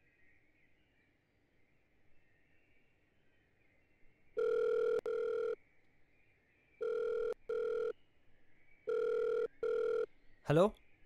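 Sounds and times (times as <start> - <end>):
telephone ringback tone: 4.4 - 5.6, 6.8 - 7.9, 8.9 - 10.1.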